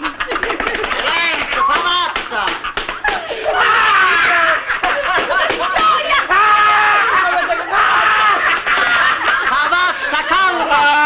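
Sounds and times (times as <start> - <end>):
people laughing loudly: 0.0 - 11.0.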